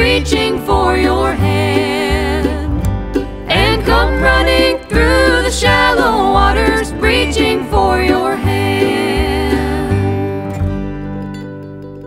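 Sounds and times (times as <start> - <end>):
acoustic bluegrass band playing: 0.0 - 12.0.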